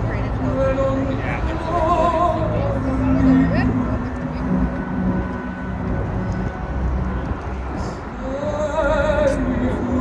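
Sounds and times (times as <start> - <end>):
crowd chatter: 0.0 - 10.0
orchestral music from loudspeakers: 0.0 - 10.0
steady low rumble: 0.0 - 10.0.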